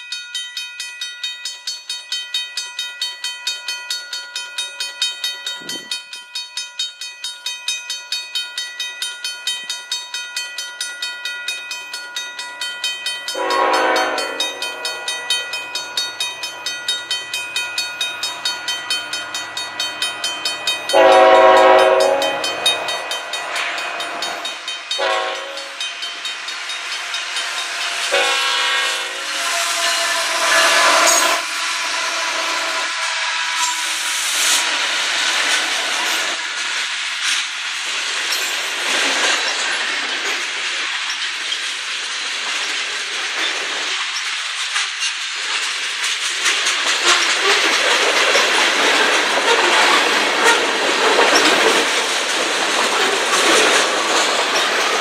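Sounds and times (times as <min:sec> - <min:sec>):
crossing bell ringing: 0:00.0 - 0:36.4
diesel locomotives passing: 0:02.8 - 0:55.0
train wheel clatter: 0:06.9 - 0:55.0
train horn: 0:13.3 - 0:15.2, 0:20.9 - 0:22.8, 0:25.0 - 0:25.8, 0:28.1 - 0:33.9, 0:49.5 - 0:50.7.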